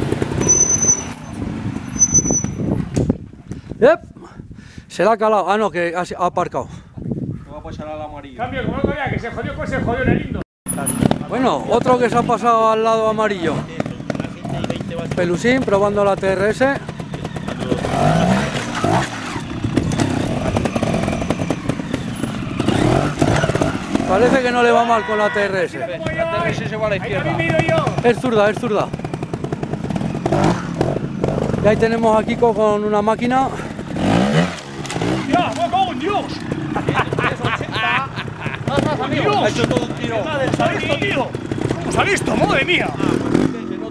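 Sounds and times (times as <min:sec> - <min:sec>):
motorcycle engine revving: 0:00.0 - 0:03.1, 0:10.7 - 0:43.9.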